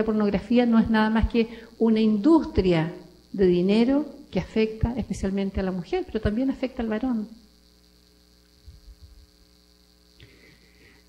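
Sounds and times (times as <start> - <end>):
electrical mains hum: 0.0 - 11.0
faint high whine: 0.0 - 11.0.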